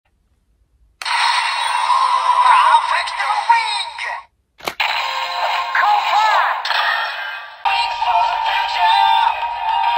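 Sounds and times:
tinny toy sound effect: 1.0s - 9.9s
toy electronic standby music: 7.7s - 9.9s.

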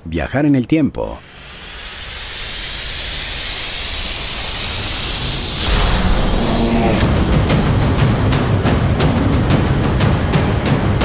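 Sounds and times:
rushing hiss riser: 1.1s - 11.0s.

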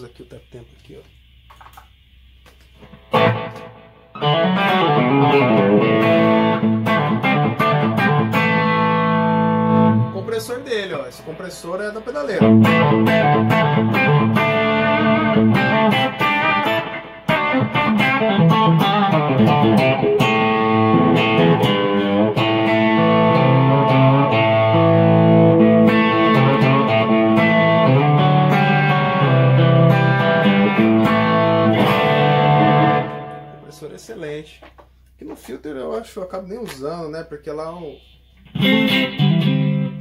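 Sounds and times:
electric guitar with delay and reverb: 2.8s - 33.9s, 38.0s - 40.0s.

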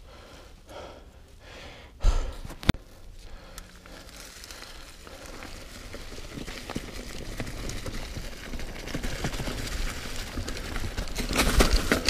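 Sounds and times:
heavy breathing: 0.0s - 5.9s
tyres crunching over dry leaves: 2.8s - 12.0s.

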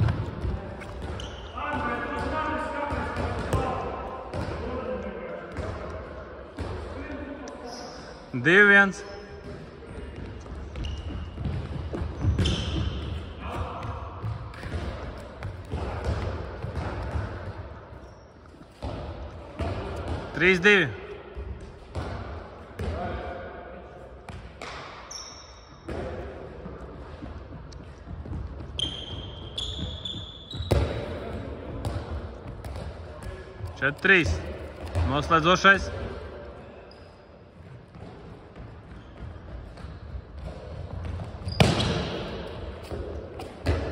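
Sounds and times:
sports hall noise: 0.0s - 43.9s
faint high squeak: 25.1s - 25.8s, 28.8s - 30.7s
handball thuds: 40.6s - 43.9s.

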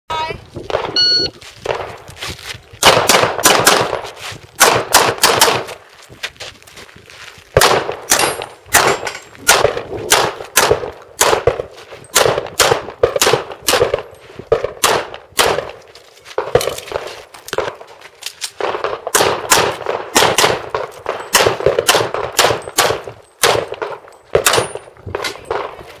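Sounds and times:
shot timer beep: 1.0s - 1.3s
rapid handgun shots: 2.8s - 5.8s, 7.6s - 15.8s, 18.6s - 25.8s.

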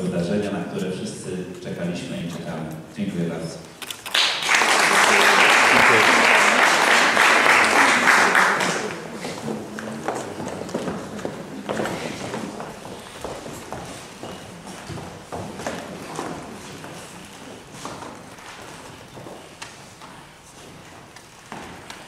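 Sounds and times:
high heels on wooden stage: 3.8s - 22.0s
audience applause: 4.0s - 9.3s.

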